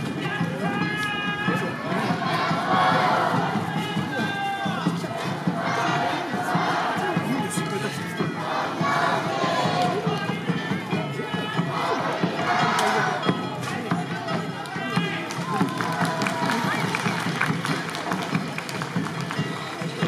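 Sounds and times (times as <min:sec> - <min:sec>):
dancers shouting chant calls: 0:00.0 - 0:18.5
festival band with large drum: 0:00.0 - 0:20.0.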